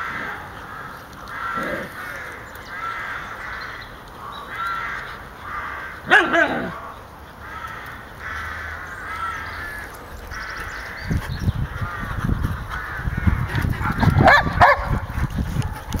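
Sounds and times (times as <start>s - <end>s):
dogs growling: 0.0s - 2.4s, 6.1s - 6.9s, 9.4s - 16.0s.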